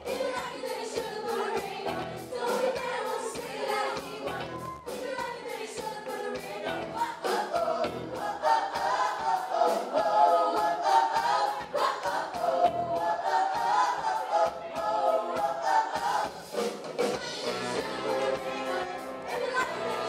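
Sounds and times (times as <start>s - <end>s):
women singing together: 0.0s - 16.5s, 17.1s - 20.0s
live backing band: 0.0s - 20.0s.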